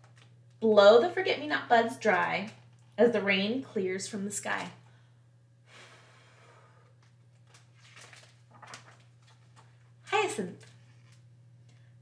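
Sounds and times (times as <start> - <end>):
low electrical hum: 0.0 - 12.0
breath puff: 5.7 - 7.0
paper page turning: 7.3 - 9.8.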